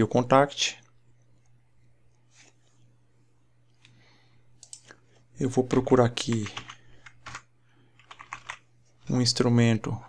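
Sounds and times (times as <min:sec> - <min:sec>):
computer keyboard typing: 0:05.7 - 0:08.7.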